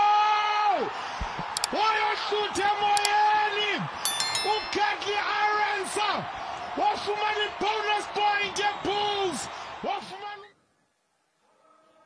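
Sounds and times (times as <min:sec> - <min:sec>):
bright chiming ring: 0:04.1 - 0:05.4.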